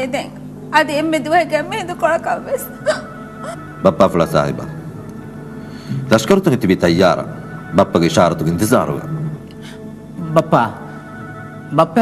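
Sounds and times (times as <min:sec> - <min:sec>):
background music: 0:00.0 - 0:12.0.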